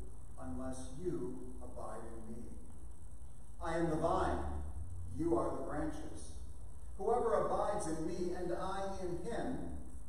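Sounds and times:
man reading aloud: 0:00.0 - 0:02.7, 0:03.6 - 0:06.4, 0:07.0 - 0:09.8.

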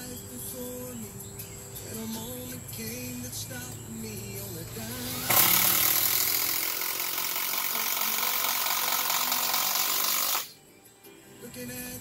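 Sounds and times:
cordless driver driving screw into wood: 0:05.0 - 0:10.5.

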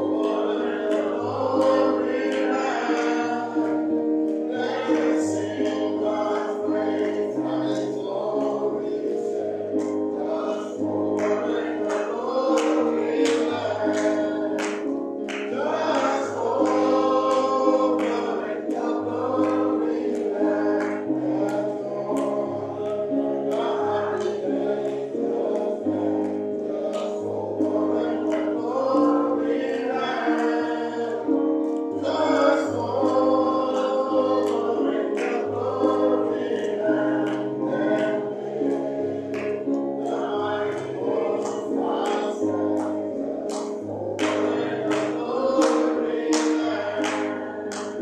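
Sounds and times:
gospel choir singing: 0:00.0 - 0:48.0.

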